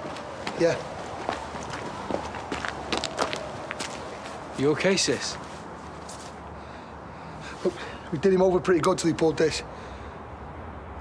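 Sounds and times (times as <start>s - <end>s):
footsteps on hard ground: 0.0s - 4.5s.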